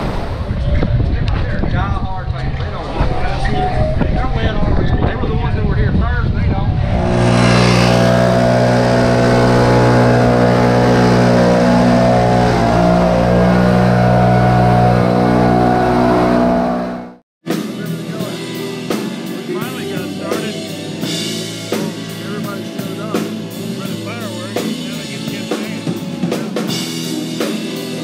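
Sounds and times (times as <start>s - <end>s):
people talking: 0.6s - 7.1s, 17.6s - 18.6s, 19.2s - 26.9s
leaf blower droning: 6.8s - 17.2s.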